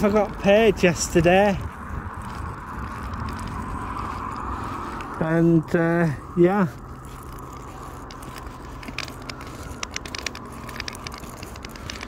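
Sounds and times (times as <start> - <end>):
low rumble: 0.0 - 12.0
steady road hiss: 0.0 - 12.0.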